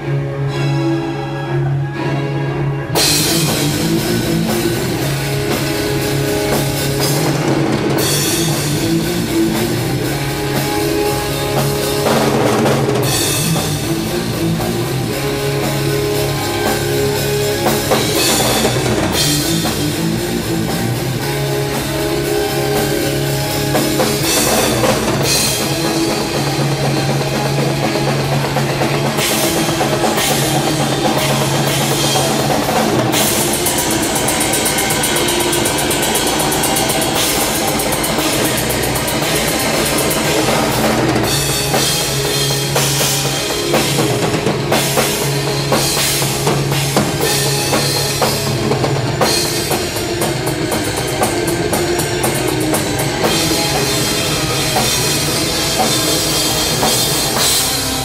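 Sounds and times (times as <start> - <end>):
heavy metal band: 0.0 - 58.0
metal drum kit played hard: 2.9 - 58.0
cymbals: 3.0 - 58.0.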